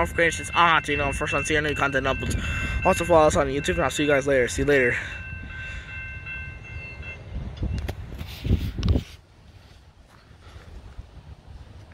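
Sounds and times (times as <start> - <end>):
high-pitched ring: 0.0 - 8.0
distant freight train rumbling: 0.0 - 11.9.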